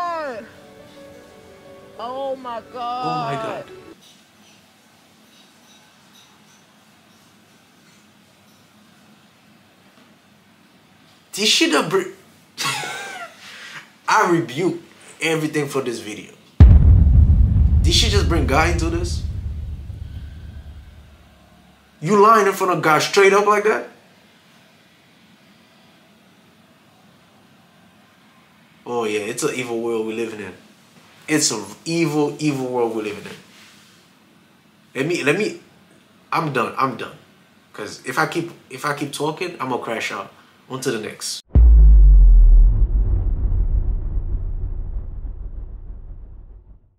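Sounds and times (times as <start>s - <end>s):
deep bass boom: 16.6s - 21.1s, 41.5s - 46.9s
deep low rumble: 16.6s - 21.1s, 41.5s - 46.9s.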